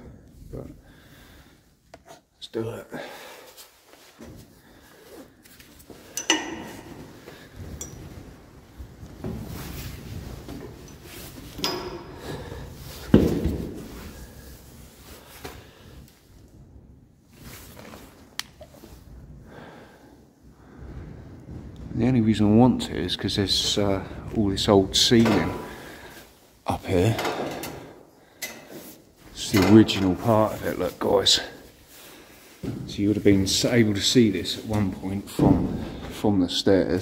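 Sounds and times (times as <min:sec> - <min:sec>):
rustling and handling noise: 0:03.3 - 0:36.2.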